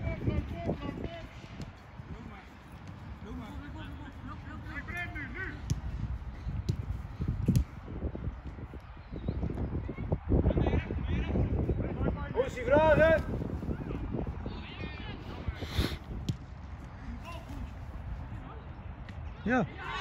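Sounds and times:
wind rumble on microphone: 0.0 - 20.0
ball being kicked: 6.6 - 7.8.

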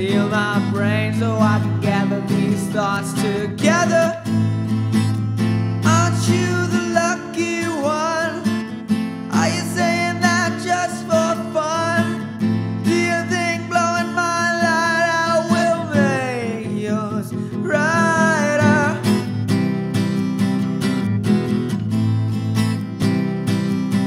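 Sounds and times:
person singing: 0.0 - 4.4, 5.8 - 8.6, 9.3 - 19.2
strummed acoustic guitar: 0.0 - 24.0.

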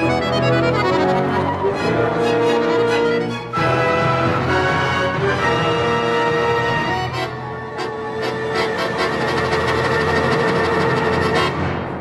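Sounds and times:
accordion: 0.0 - 11.8
symphony orchestra playing: 0.0 - 12.0.

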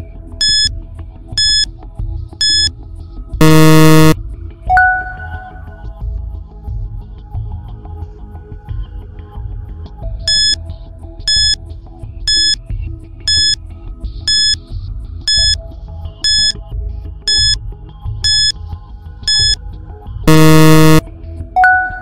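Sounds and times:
loud buzzer tone: 0.4 - 0.7, 1.4 - 1.6, 2.4 - 2.7, 3.4 - 4.2, 10.3 - 10.6, 11.3 - 11.6, 12.3 - 12.6, 13.3 - 13.6, 14.3 - 14.6, 15.3 - 15.6, 16.2 - 16.6, 17.3 - 17.6, 18.2 - 18.5, 19.3 - 19.6, 20.3 - 21.0
short electronic beeps: 0.4 - 0.7, 1.4 - 1.7, 2.4 - 2.7, 3.4 - 5.7, 10.3 - 10.6, 11.3 - 11.6, 12.3 - 12.6, 13.3 - 13.6, 14.3 - 14.6, 15.3 - 15.6, 16.2 - 16.6, 17.3 - 17.6, 18.2 - 18.5, 19.3 - 19.6, 20.3 - 21.0, 21.6 - 22.0.

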